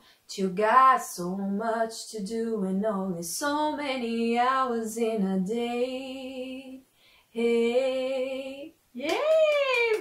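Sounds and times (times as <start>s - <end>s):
woman singing: 0.3s - 10.0s
woman exclaiming: 9.0s - 10.0s.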